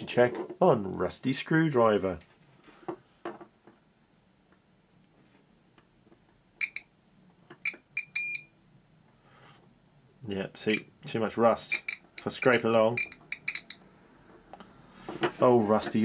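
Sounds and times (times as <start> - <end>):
multimeter high-pitched beeps: 6.6 - 6.9, 7.6 - 8.5, 10.7 - 10.9, 11.7 - 13.8
probe tips clicking: 11.7 - 13.8.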